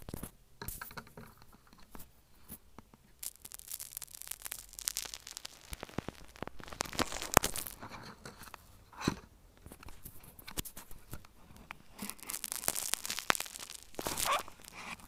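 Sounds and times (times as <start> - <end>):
slime crackling and popping: 3.1 - 8.7, 9.6 - 15.0.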